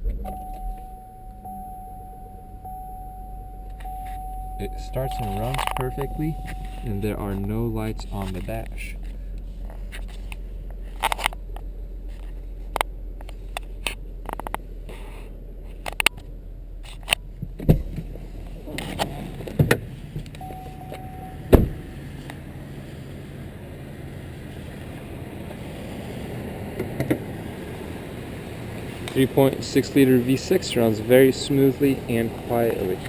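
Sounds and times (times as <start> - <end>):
car engine idling: 0.0 - 33.0
brief beep: 0.3 - 8.2, 20.4 - 21.5
car door clicks and knocks: 20.9 - 21.8.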